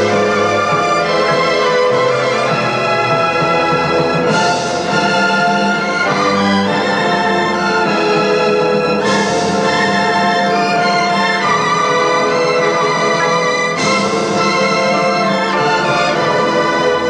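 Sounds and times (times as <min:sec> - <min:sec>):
symphony orchestra playing: 0:00.0 - 0:17.0.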